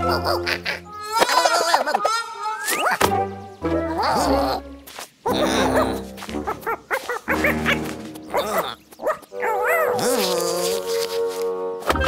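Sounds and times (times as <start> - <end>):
cartoon characters squeaky chattering: 0.0 - 3.0, 5.3 - 8.9
cheerful background music: 3.0 - 12.0.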